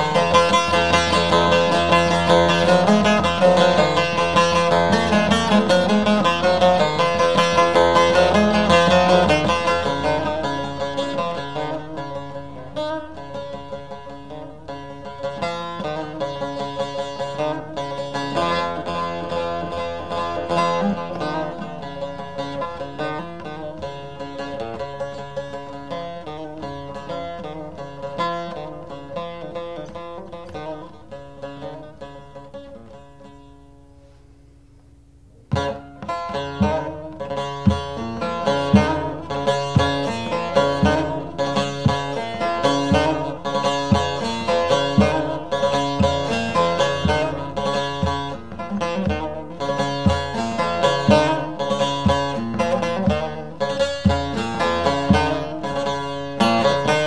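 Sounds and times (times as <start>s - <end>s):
long-necked lute folk playing: 0.0s - 57.0s.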